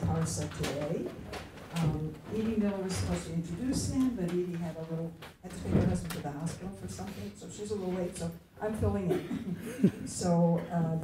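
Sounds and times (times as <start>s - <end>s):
woman speaking into microphone: 0.0s - 11.0s.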